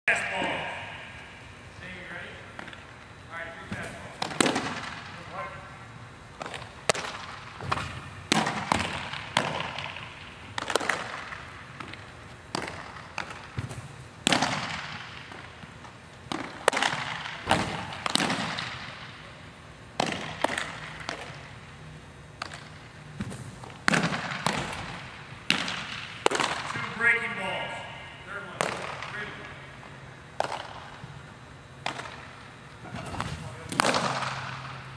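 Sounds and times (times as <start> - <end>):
baseballs popping into mitts: 6.4 - 15.5, 16.3 - 19.1, 20.0 - 21.5, 22.4 - 26.8, 30.4 - 31.0, 31.8 - 34.8.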